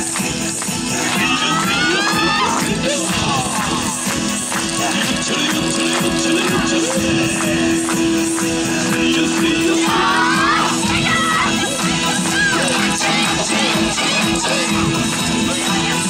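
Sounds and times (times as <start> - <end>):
dance music over loudspeaker: 0.0 - 16.0.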